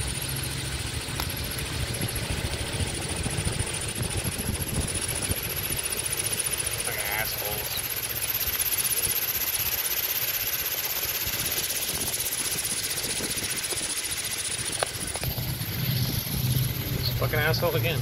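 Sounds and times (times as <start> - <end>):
outboard motor running: 0.0 - 18.0
wind: 0.0 - 18.0.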